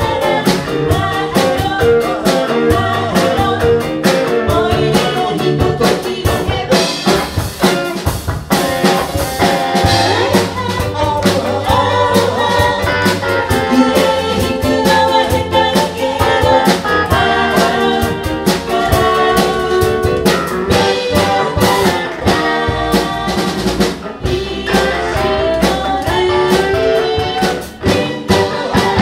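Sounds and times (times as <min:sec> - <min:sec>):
voices singing: 0:00.0 - 0:07.8, 0:08.6 - 0:29.0
bass: 0:00.0 - 0:29.0
drum kit beat: 0:00.0 - 0:29.0
electric guitar: 0:00.0 - 0:29.0.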